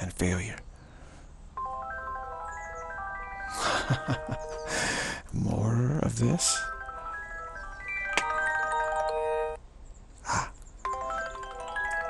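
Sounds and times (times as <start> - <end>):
phone ringtone marimba melody: 1.6 - 5.2, 5.8 - 9.6, 10.9 - 12.0.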